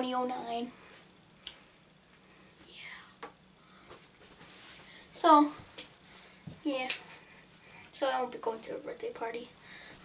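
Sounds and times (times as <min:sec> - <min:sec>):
child whispering: 0:02.6 - 0:03.2.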